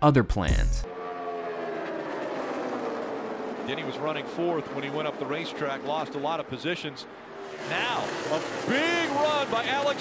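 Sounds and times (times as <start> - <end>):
race cars passing at speed: 0.9 - 10.0.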